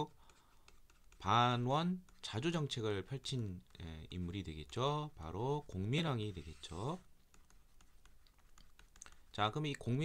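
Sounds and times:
stylus tapping on tablet screen: 0.0 - 2.7, 7.2 - 10.0.

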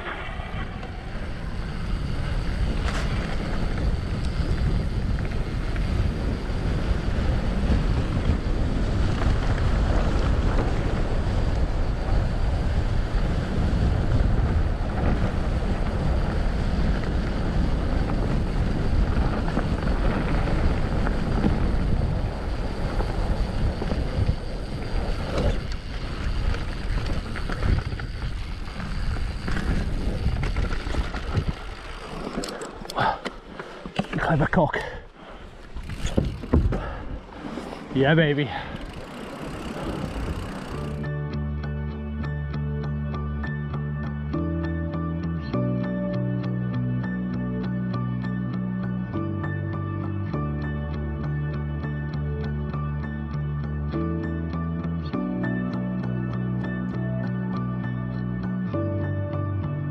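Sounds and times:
bike rattling: 0.0 - 41.1
wind rushing over microphone: 0.0 - 41.1
bike tyres rolling: 0.0 - 41.2.

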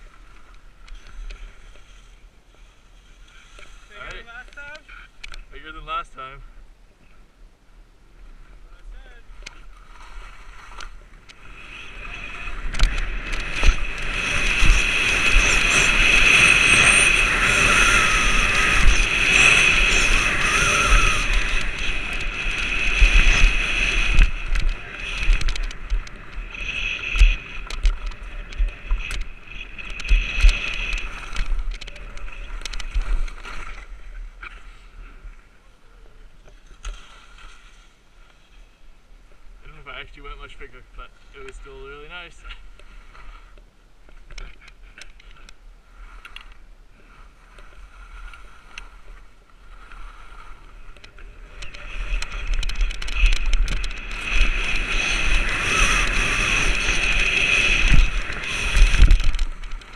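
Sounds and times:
skis scraping over snow: 0.0 - 6.0, 8.7 - 35.5, 36.5 - 38.8, 44.7 - 59.9
wind on microphone: 9.7 - 34.4, 45.9 - 59.9.

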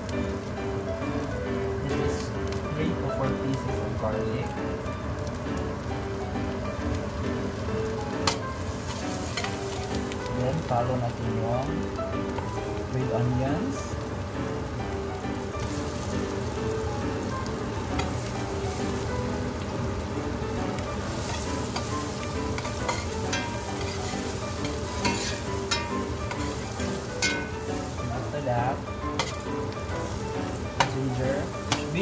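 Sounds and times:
onion sizzling in hot oil: 0.0 - 32.0
metal spoon scraping a pot: 22.6 - 26.4.

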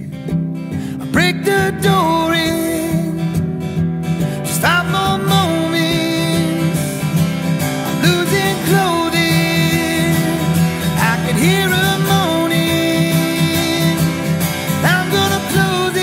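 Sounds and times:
acoustic guitar strumming: 0.0 - 16.0
man singing long notes: 4.4 - 6.9, 7.8 - 16.0.

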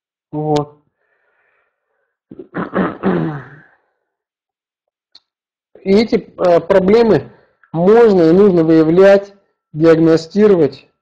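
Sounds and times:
man's wordless voiced sound: 5.7 - 10.9.

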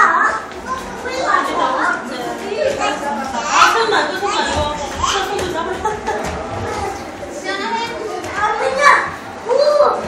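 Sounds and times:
children calling and squealing: 0.0 - 10.0.

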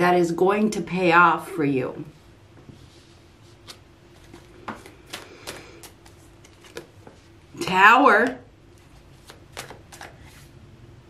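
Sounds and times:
cards flicking and rustling: 3.6 - 7.3, 8.7 - 10.5.

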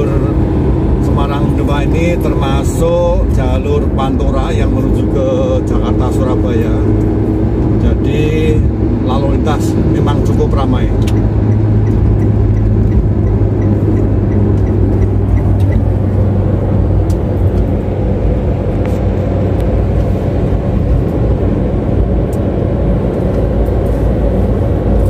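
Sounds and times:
car cabin road and engine noise: 0.0 - 25.0.

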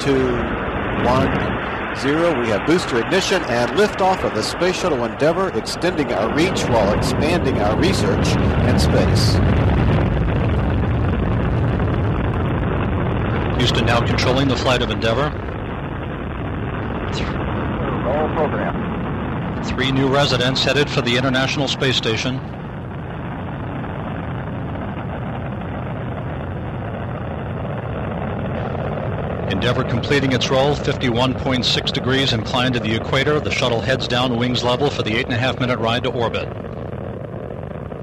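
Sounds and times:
rocket engines roaring: 0.0 - 38.0.

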